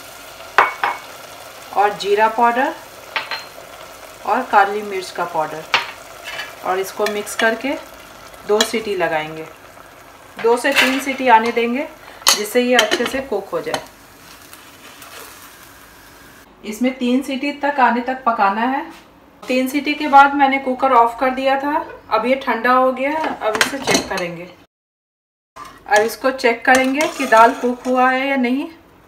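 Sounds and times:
curry sizzling in a pot: 0:00.0 - 0:16.5, 0:25.6 - 0:28.4.

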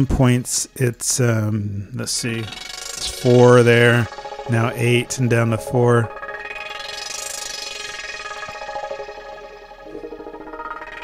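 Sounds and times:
synthesizer sustained notes: 0:02.0 - 0:11.0.

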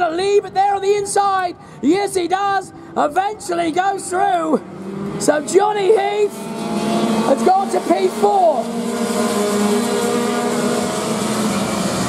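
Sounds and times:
go-kart engines racing: 0:02.5 - 0:12.0.

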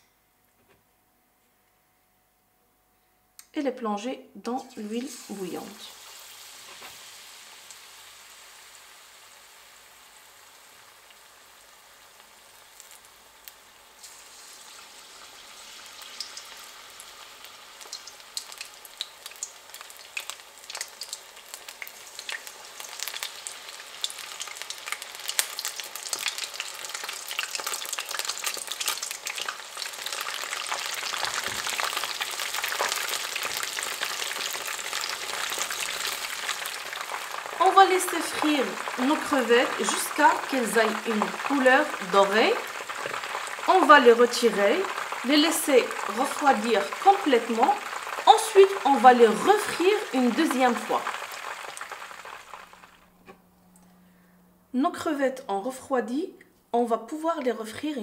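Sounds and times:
shrimp deep-frying in oil: 0:04.6 - 0:53.1.

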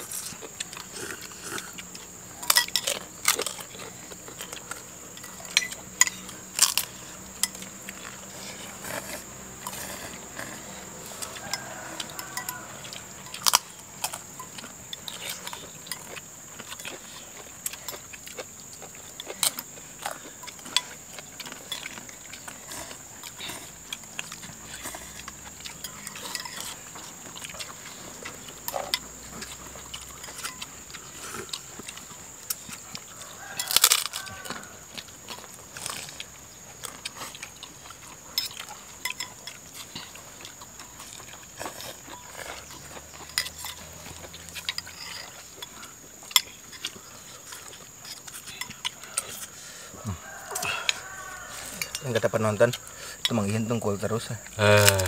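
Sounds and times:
people slurping soup: 0:00.0 - 0:13.2
high-pitched insect drone: 0:00.0 - 0:55.0
spoons clicking on ceramic bowls: 0:11.2 - 0:13.7, 0:51.7 - 0:53.4.

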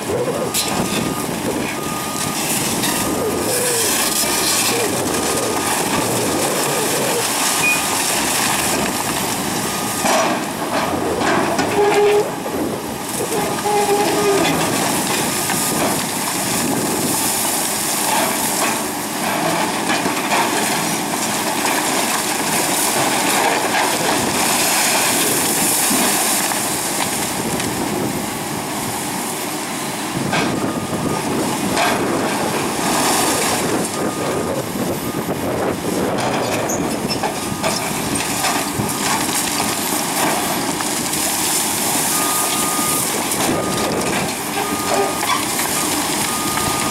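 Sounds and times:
diesel engines running: 0:00.0 - 0:46.9
concrete cracking and falling: 0:02.8 - 0:09.7, 0:37.7 - 0:46.9.

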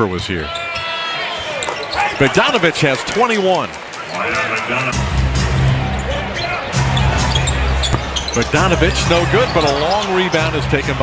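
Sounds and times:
basketball dribbling: 0:07.4 - 0:09.9.

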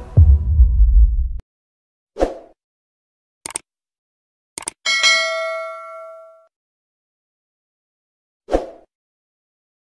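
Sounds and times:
mouse double clicks: 0:04.6 - 0:04.8
bell ding: 0:04.9 - 0:06.5.

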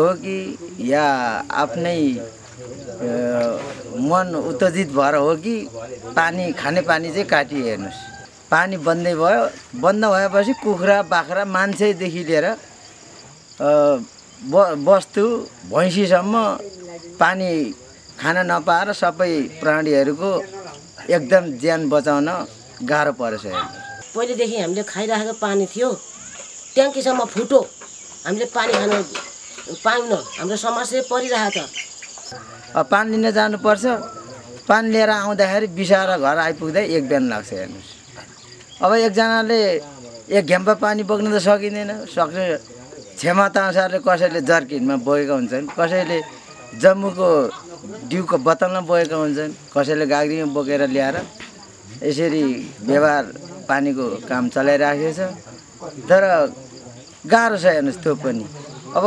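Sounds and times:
man speaking: 0:00.0 - 0:12.6, 0:13.6 - 0:23.8, 0:32.3 - 0:38.1, 0:38.8 - 0:51.3, 0:51.9 - 0:59.0
insects chirring: 0:00.0 - 0:59.0
woman speaking: 0:24.1 - 0:25.9, 0:28.3 - 0:31.8.

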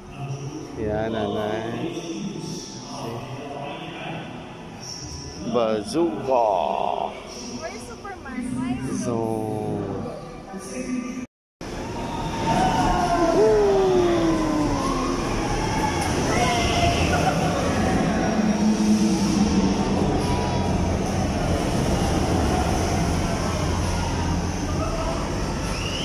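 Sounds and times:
thrill ride mechanical rumble: 0:11.6 - 0:26.0.

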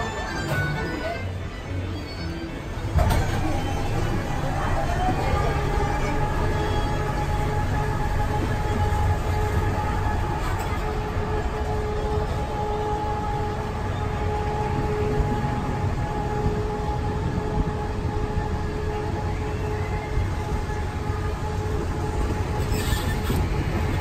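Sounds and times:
constant whine: 0:00.0 - 0:24.0
monorail train rumbling: 0:00.0 - 0:24.0.

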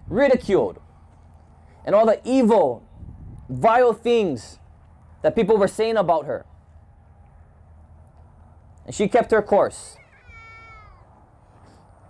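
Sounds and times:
faint high-pitched call: 0:10.0 - 0:11.1.

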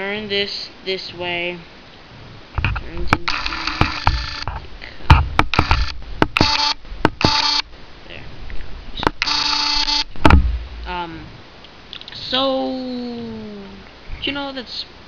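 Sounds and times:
electronic beep tones: 0:05.6 - 0:07.6, 0:09.2 - 0:10.1.

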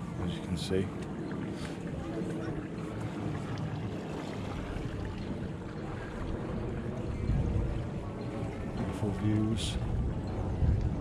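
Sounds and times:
faint voices: 0:00.0 - 0:11.0
wind rumbling on microphone: 0:00.0 - 0:11.0.

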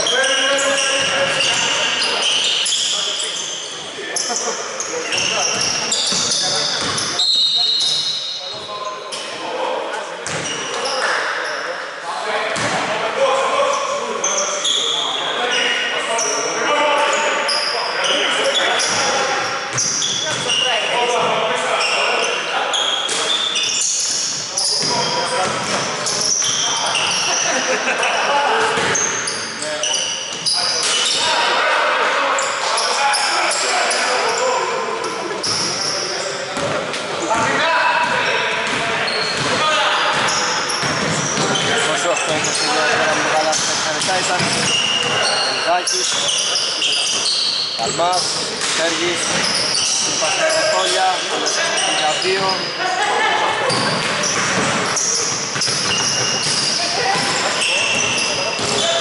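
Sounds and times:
players' voices: 0:00.0 - 0:59.0.

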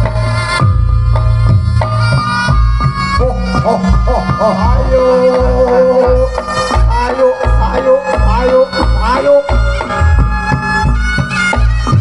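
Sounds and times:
hand drums: 0:00.0 - 0:12.0
shawm playing wavering melody: 0:00.0 - 0:12.0.

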